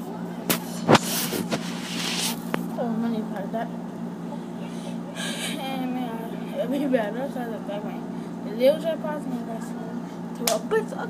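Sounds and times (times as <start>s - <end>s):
hands rubbing camera microphone: 0.5s - 2.7s.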